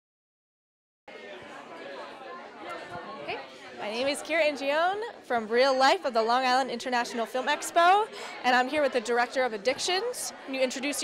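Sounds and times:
people chattering in a hall: 1.1 - 11.0.

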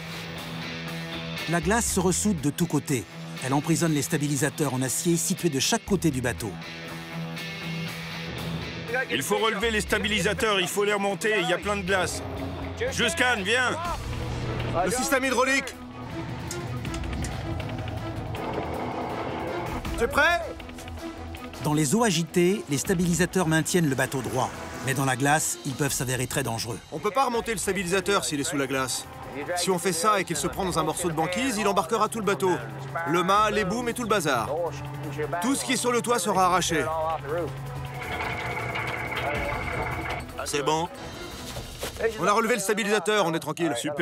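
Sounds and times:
background music held notes: 0.0 - 42.6
boat engine drone: 15.8 - 19.9, 37.5 - 40.2
hydraulic whine: 16.0 - 19.9, 37.8 - 40.3.

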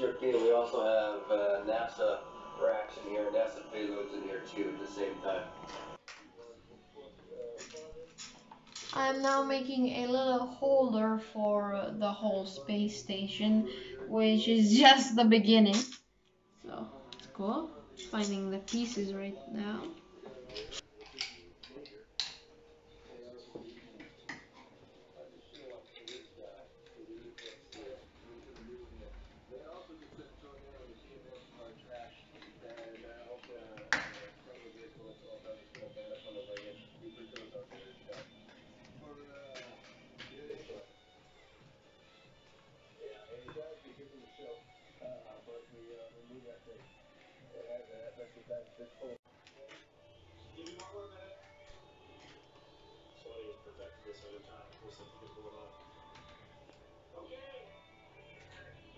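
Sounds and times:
faint background music: 0.0 - 58.9
voice from television: 0.0 - 58.9.

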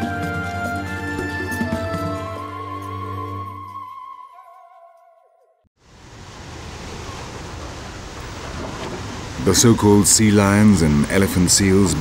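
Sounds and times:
surf breaking over rocks: 5.9 - 12.0.

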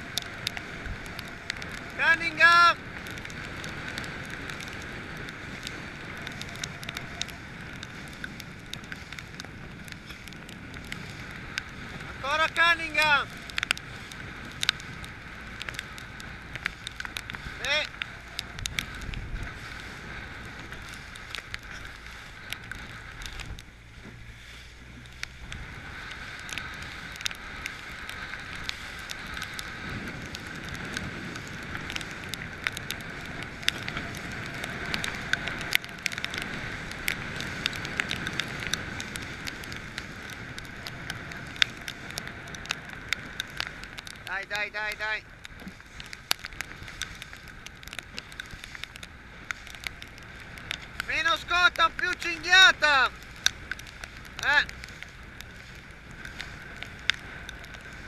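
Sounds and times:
water slapping against hull: 0.0 - 58.0
wind buffeting microphone: 0.0 - 58.0.

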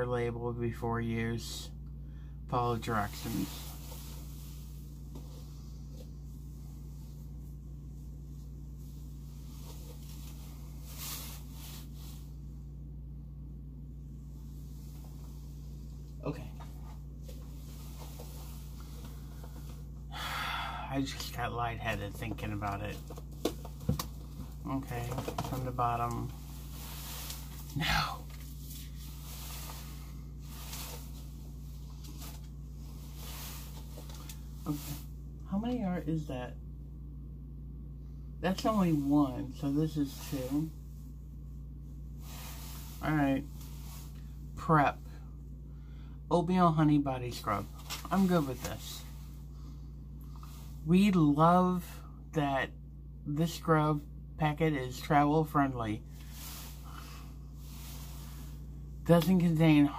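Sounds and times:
steady low hum: 0.0 - 59.9
soft scuffs: 14.4 - 19.9, 22.5 - 35.2.

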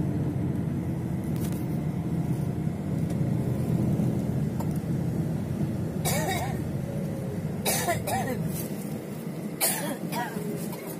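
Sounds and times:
vehicle driving rumble: 0.0 - 10.9.

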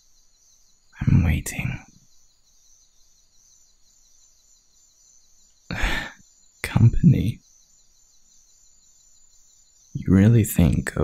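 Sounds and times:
insects chirping: 0.0 - 11.0
man laughing low: 5.7 - 6.2.

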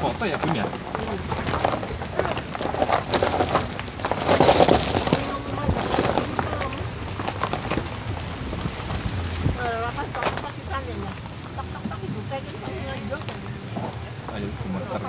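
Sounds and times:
car rattles and knocks on rough road: 0.0 - 12.4
faint voices: 0.0 - 15.0.

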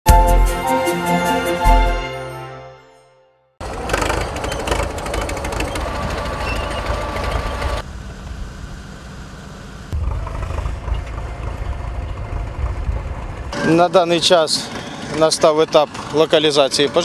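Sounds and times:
bulldozer diesel engine clanking: 3.6 - 7.8, 10.0 - 17.0
low engine drone: 3.6 - 16.2.

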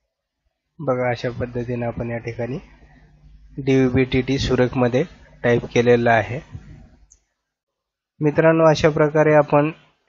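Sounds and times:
narrator speaking: 0.8 - 2.8, 3.5 - 6.8.

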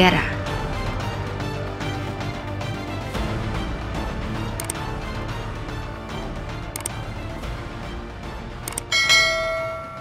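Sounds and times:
background music: 0.0 - 10.0
bell-like chime: 8.9 - 10.0.

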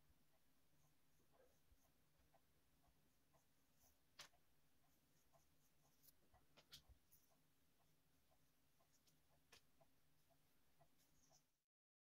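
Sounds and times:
paintbrush scratching on wood: 0.8 - 11.6.

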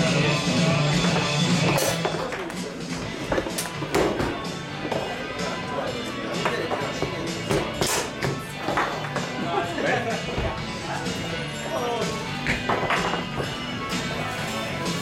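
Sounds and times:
background music: 0.0 - 15.0
foosball ball clacking: 1.7 - 4.4.

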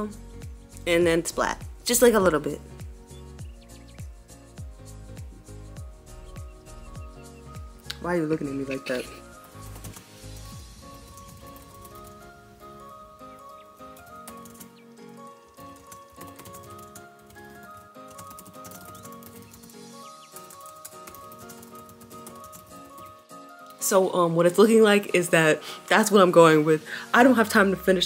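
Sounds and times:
soft music of held notes: 0.0 - 28.0.

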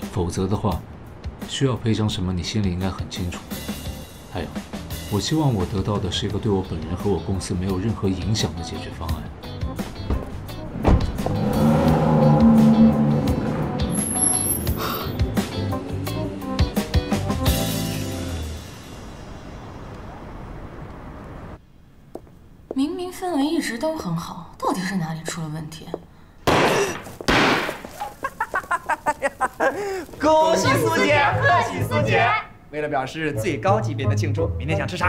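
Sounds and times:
background music: 0.0 - 19.8, 30.2 - 35.0
car engine pulling away: 9.8 - 21.6
thump: 10.1 - 11.4
confetti cannon pops: 26.5 - 28.0.

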